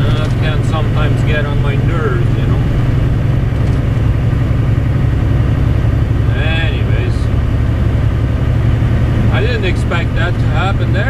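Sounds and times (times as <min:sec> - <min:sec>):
person speaking: 0:00.0 - 0:02.8, 0:06.3 - 0:07.3, 0:09.3 - 0:11.0
diesel engine drone: 0:00.0 - 0:11.0
road noise: 0:00.0 - 0:11.0.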